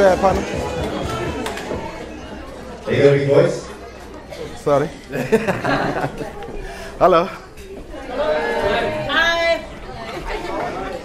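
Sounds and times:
chatter of voices in a room: 0:00.0 - 0:11.0.

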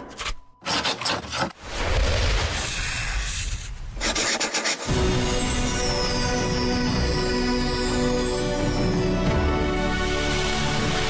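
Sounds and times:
pencil scratching on paper: 0:04.0 - 0:04.9.

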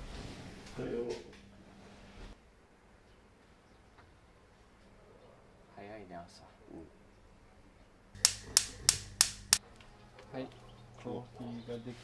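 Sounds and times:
sharp clicks: 0:08.2 - 0:09.6.

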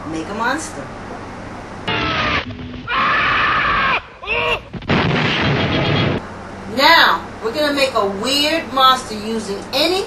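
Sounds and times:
wavering pitched cry: 0:01.9 - 0:04.7
explosion-like rumble blasts: 0:04.6 - 0:06.2.

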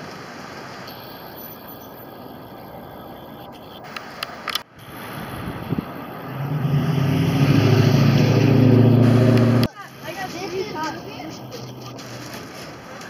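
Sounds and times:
engine humming: 0:00.0 - 0:13.0.

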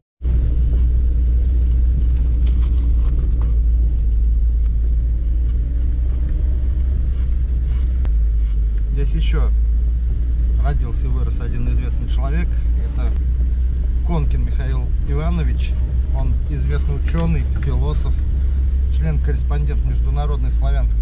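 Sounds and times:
car engine and tyres rumbling: 0:00.2 - 0:21.0.

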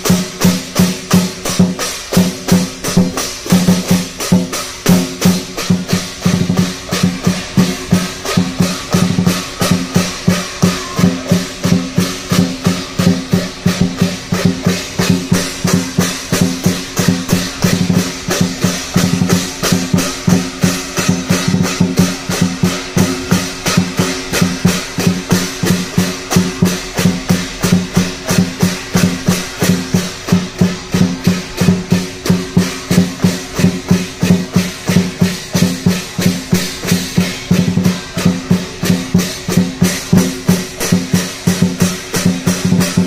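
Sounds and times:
clashing cymbals: 0:00.0 - 0:43.0
large drum beating: 0:00.0 - 0:43.0.

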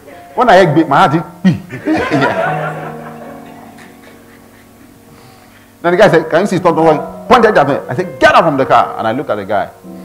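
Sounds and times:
soft music of sustained chords: 0:00.0 - 0:10.0.

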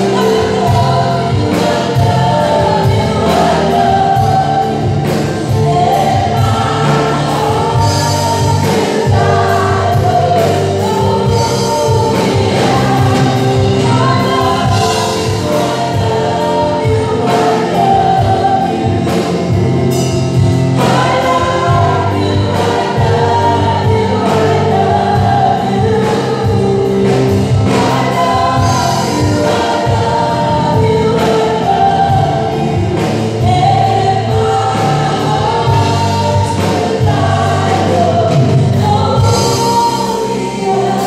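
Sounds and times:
band accompaniment: 0:00.0 - 0:41.0
singers singing together: 0:00.0 - 0:41.0.

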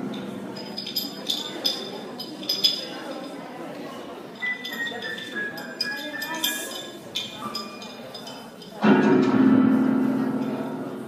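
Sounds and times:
murmur of audience voices: 0:00.0 - 0:11.0
bell-like chiming tones: 0:04.4 - 0:08.2.

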